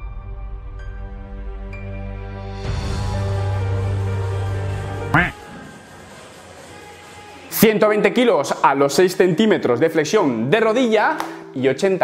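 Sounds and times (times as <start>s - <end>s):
background music: 0.0s - 12.0s
nasal quack-like voice: 5.2s - 5.4s.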